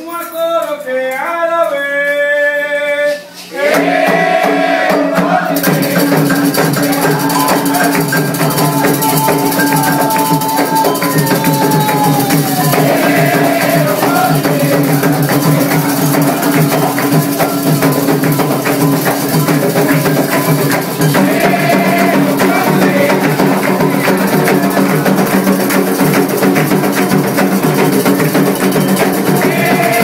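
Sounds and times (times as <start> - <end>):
hand percussion: 3.5 - 30.0
fast hand drums playing: 3.7 - 30.0.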